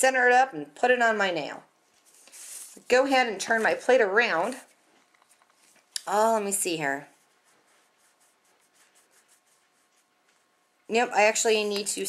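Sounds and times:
hands rubbing on metal plate: 7.2s - 10.6s.

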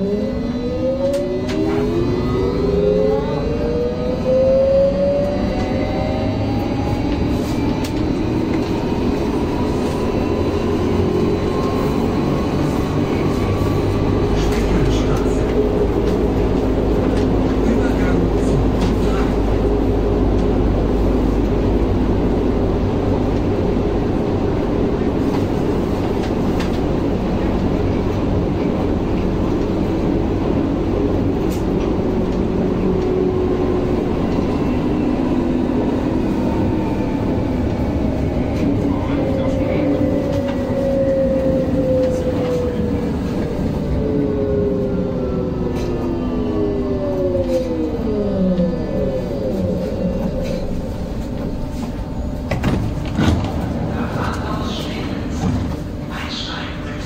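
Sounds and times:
train traction motor whine: 0.0s - 54.0s
train running rumble: 0.0s - 57.0s.

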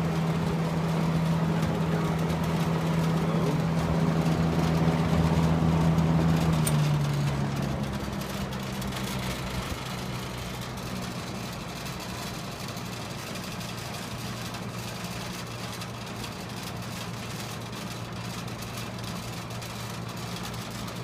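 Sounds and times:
fan blades rushing air: 0.0s - 21.0s
low motor hum: 0.0s - 21.0s.

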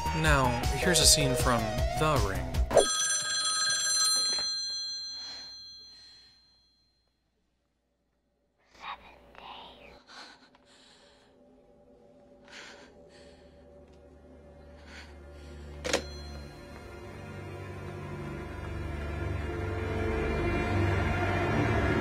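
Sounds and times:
telephone bell ringing: 2.7s - 6.9s, 15.9s - 16.9s
breathy gasps and whispers: 8.7s - 11.7s
low drone: 11.0s - 22.0s
handset lifted: 15.8s - 16.4s.

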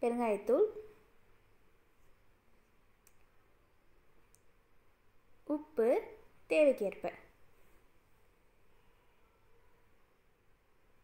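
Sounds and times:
faint click: 3.0s - 3.3s.

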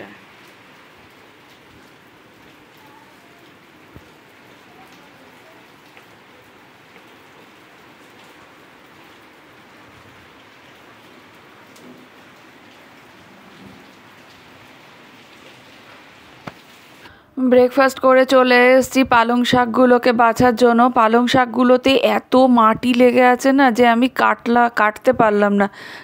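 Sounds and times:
rain on leaves and paving: 0.0s - 17.1s.

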